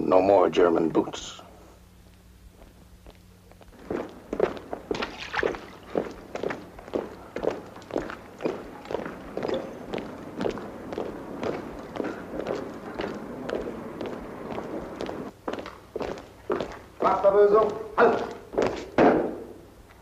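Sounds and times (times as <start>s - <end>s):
boots marching in step: 2.5s - 20.0s.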